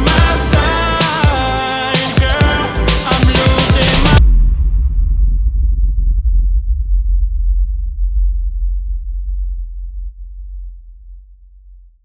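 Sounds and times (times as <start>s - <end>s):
deep electronic bass tone: 2.2s - 12.0s.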